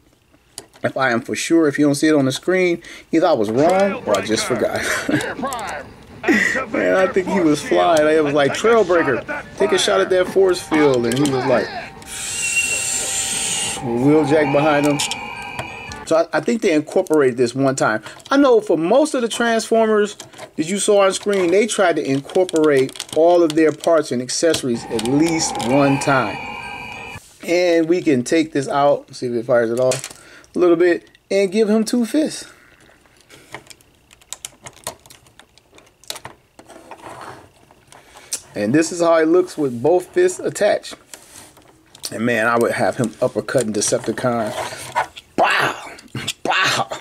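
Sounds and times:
steady high hiss: 0:01.0 - 0:18.0, 0:23.9 - 0:29.0
short whistling tone: 0:10.6 - 0:16.1
plastic toy parts clicking: 0:21.1 - 0:24.0, 0:33.5 - 0:36.4.

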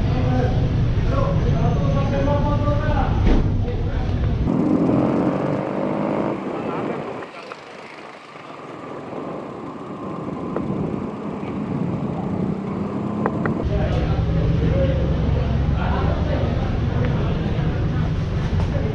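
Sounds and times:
cars and motorbikes passing: 0:00.0 - 0:18.9
indistinct voices: 0:00.0 - 0:18.9.

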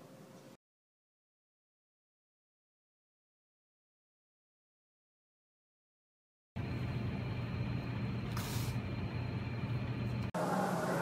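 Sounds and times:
low room hum: 0:06.6 - 0:11.0.

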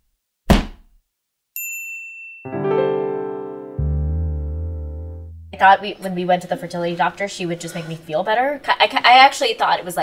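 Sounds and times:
high bell ding: 0:01.6 - 0:02.6
keyboard theme music: 0:02.5 - 0:05.6.

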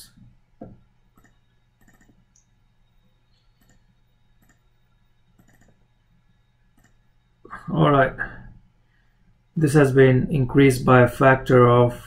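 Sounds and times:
steady low hum: 0:00.0 - 0:12.0
computer mouse clicks: 0:00.6 - 0:02.5, 0:03.5 - 0:04.7, 0:05.4 - 0:05.8, 0:06.8 - 0:07.0.

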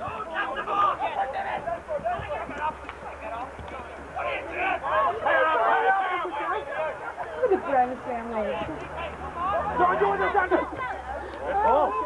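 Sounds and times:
spectators shouting: 0:00.0 - 0:12.0.

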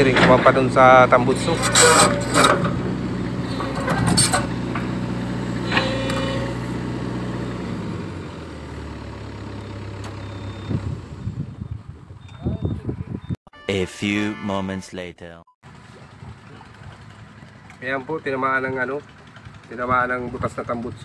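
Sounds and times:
metal clanks: 0:00.0 - 0:05.0
excavator diesel engine running: 0:00.0 - 0:12.3, 0:15.6 - 0:21.0.

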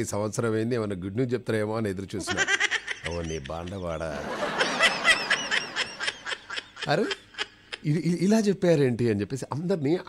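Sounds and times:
person laughing: 0:02.3 - 0:08.0.

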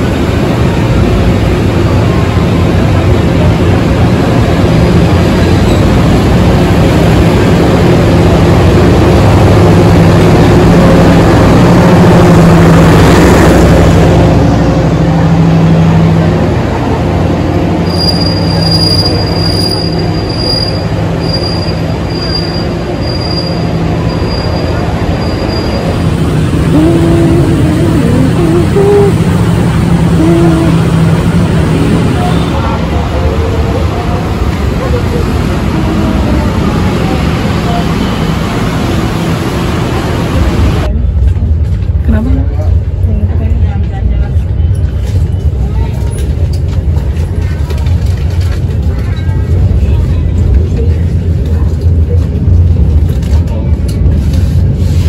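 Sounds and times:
train coaches rumbling past: 0:00.0 - 0:55.0
high wheel squeal: 0:17.8 - 0:26.0.

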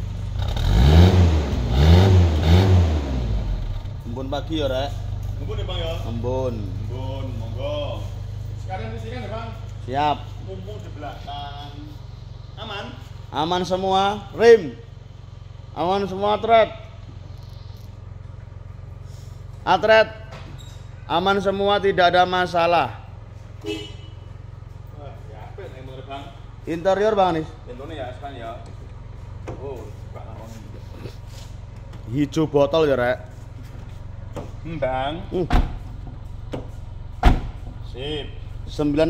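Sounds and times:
car engine revving: 0:00.0 - 0:20.0, 0:21.1 - 0:39.0.

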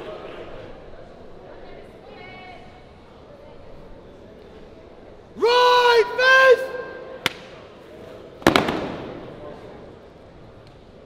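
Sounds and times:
loud sharp bang: 0:08.4 - 0:09.7.

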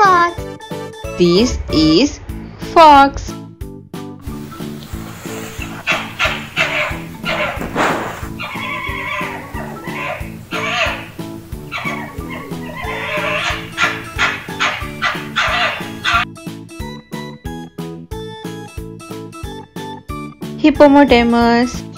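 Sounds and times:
cheerful background music: 0:00.0 - 0:21.9
fox calling: 0:05.2 - 0:16.2.

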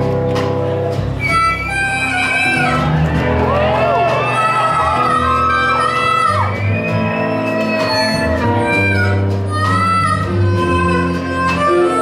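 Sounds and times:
low bass notes: 0:00.0 - 0:12.0
harmonica melody: 0:01.0 - 0:03.2, 0:04.2 - 0:12.0.

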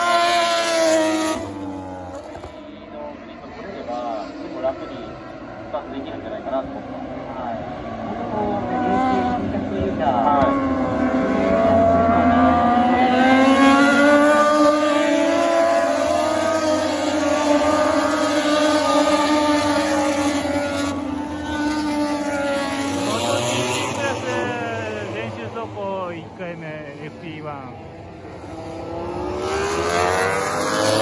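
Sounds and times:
racing motorcycles passing: 0:00.0 - 0:31.0.

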